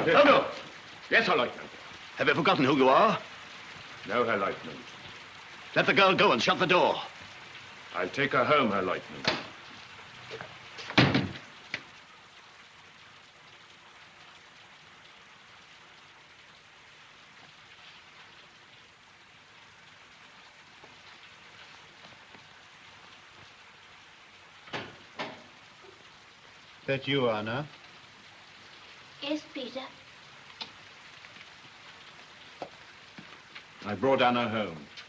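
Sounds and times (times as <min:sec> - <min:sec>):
film soundtrack hiss: 0:00.0 - 0:35.0
door shutting with thud: 0:09.2 - 0:09.5, 0:10.8 - 0:11.4, 0:24.7 - 0:25.4.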